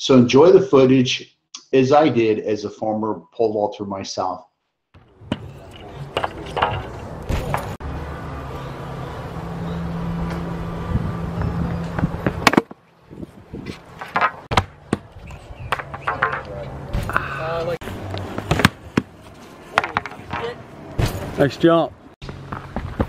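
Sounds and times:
background voices: 15.9s - 17.8s.

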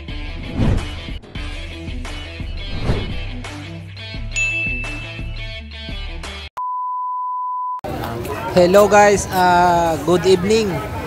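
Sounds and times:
crowd noise: 7.8s - 11.0s.

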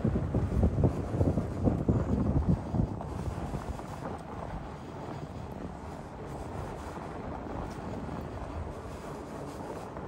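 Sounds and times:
bike tyres rolling on sand: 0.0s - 10.0s
wind on microphone: 0.0s - 10.0s.

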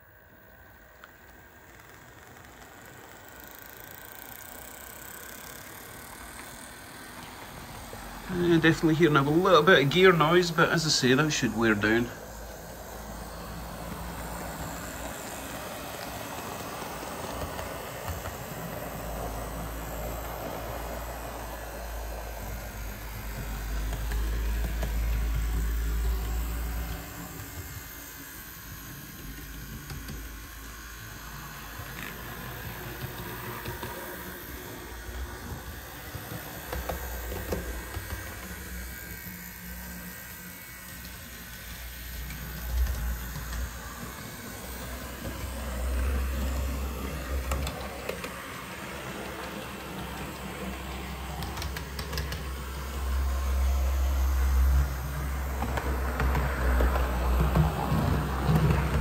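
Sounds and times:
model train motor whirring: 0.0s - 59.0s
gear noise: 0.8s - 59.0s.

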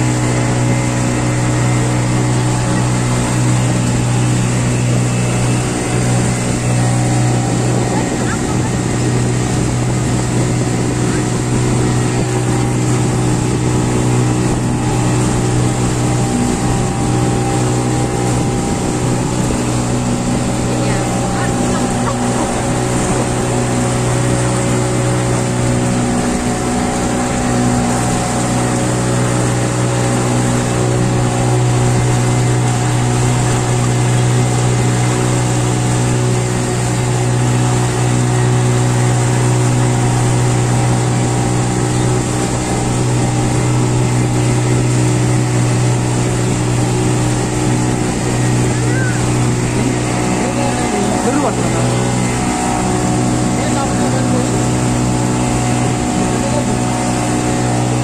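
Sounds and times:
motorboat engine droning: 0.0s - 58.0s.

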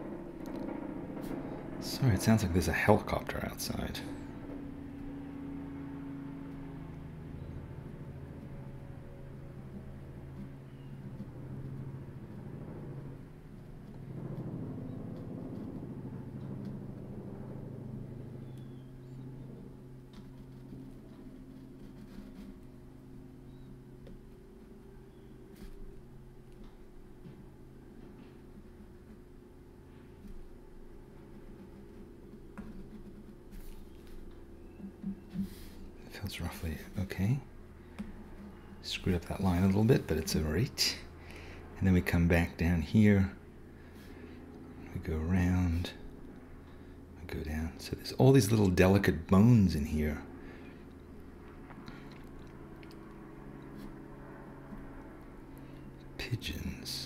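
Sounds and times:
helicopter drone: 0.0s - 57.0s.

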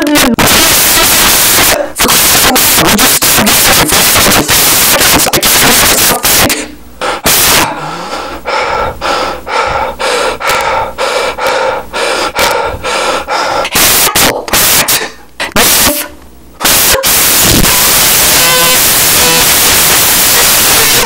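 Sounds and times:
distorted cartoon voice: 0.0s - 6.7s, 7.3s - 7.7s, 13.8s - 21.0s
harsh static-like roar: 0.0s - 7.8s, 13.7s - 21.0s
loud blasts: 0.3s - 6.5s, 7.3s - 7.7s, 16.6s - 21.0s.

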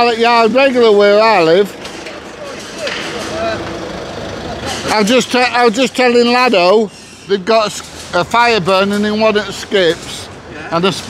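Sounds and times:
low outdoor rumble: 0.0s - 6.9s.

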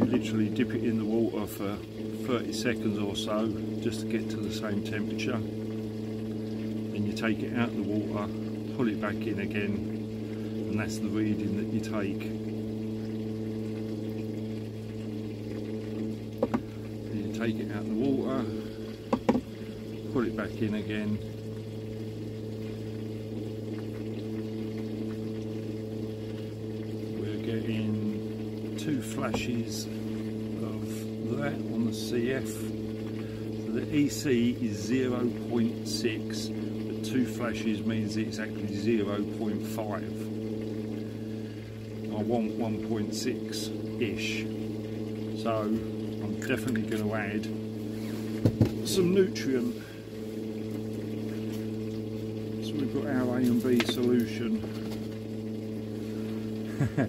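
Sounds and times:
low electrical hum: 0.0s - 57.0s.

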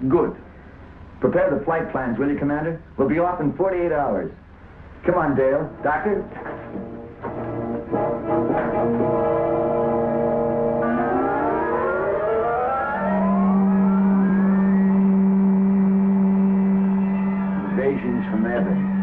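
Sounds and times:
steady low drone: 4.7s - 19.0s
steady electronic tones: 4.8s - 19.0s
rising whine: 6.8s - 19.0s.

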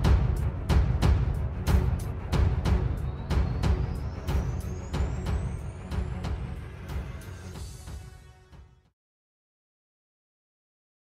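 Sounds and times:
heavy bass: 0.0s - 8.1s.

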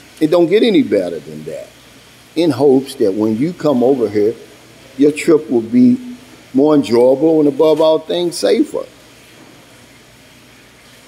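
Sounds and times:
water fountain running: 0.0s - 11.0s.

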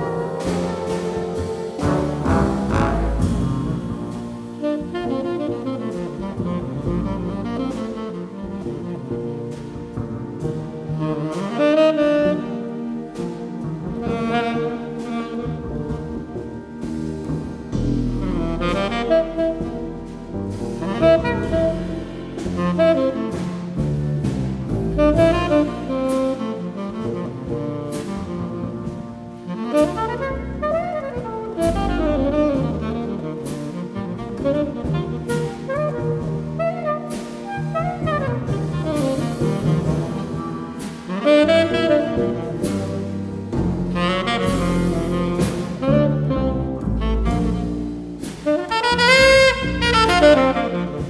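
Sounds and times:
drums: 0.0s - 51.0s
jazz ensemble playing: 0.0s - 51.0s
tenor saxophone: 0.0s - 51.0s.

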